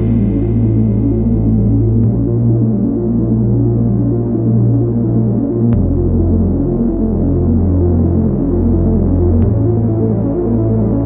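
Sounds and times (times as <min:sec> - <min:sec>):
deep synth bass: 0:00.0 - 0:11.0
pulsing synth pattern: 0:00.0 - 0:11.0.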